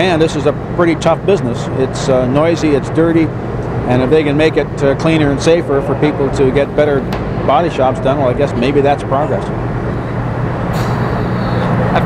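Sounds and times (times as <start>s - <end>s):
repair shop hum and rumble: 0.0s - 12.0s
brief high hiss: 10.7s - 11.6s.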